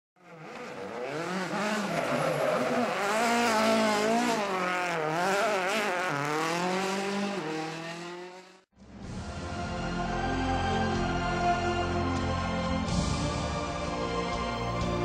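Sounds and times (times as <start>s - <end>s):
car engine revving: 0.2s - 8.7s.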